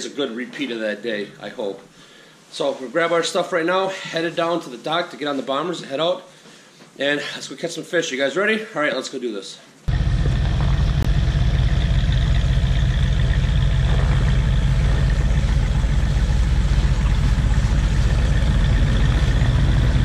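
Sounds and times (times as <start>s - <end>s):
snow vehicle engines idling: 9.9s - 20.0s.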